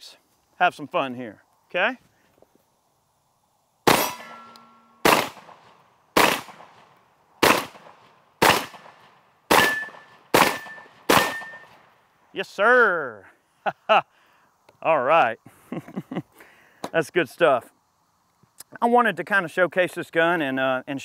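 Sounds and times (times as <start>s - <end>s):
steel targets ringing: 3.9s - 5.1s, 9.6s - 11.7s
shotgun shots: 3.9s - 11.8s.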